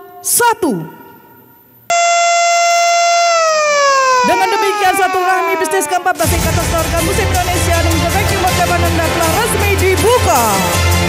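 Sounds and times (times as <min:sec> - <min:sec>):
siren wailing: 0:01.9 - 0:06.3.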